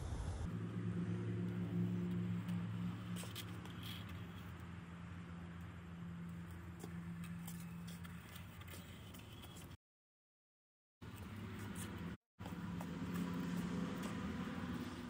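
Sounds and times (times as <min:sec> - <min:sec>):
low motor hum: 0:00.0 - 0:08.5
faint light scrapes: 0:02.8 - 0:04.6.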